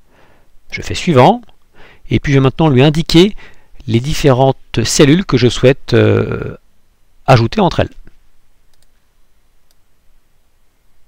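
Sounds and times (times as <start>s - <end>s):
faint computer mouse clicks: 8.7s - 9.0s.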